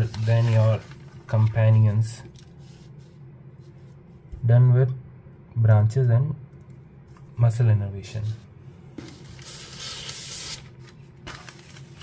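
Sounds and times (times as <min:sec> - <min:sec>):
paper sliding and rustling: 0:00.0 - 0:03.2, 0:09.0 - 0:12.0.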